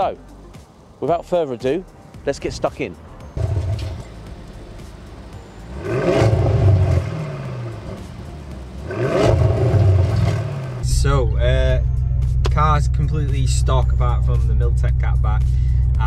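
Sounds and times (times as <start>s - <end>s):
car engine idling and revving: 3.4s - 16.0s.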